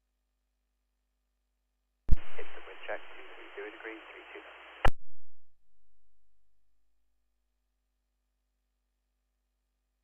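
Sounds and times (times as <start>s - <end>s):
hissy radio audio: 2.1s - 4.9s
faint voice over radio: 2.3s - 4.8s.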